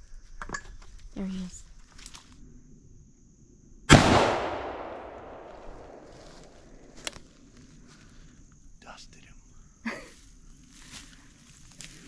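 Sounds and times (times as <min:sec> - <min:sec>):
gunshot echoing: 0:03.9 - 0:06.2.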